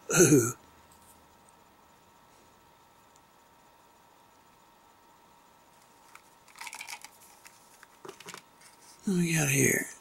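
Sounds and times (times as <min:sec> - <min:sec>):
plastic wrapper crinkling: 0:05.8 - 0:08.4.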